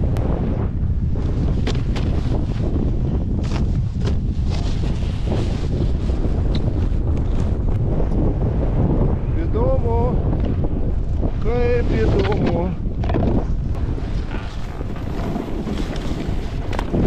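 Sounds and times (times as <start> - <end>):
wind buffeting microphone: 0.0 - 17.0
snowboard scraping on snow: 1.0 - 8.4, 13.4 - 17.0.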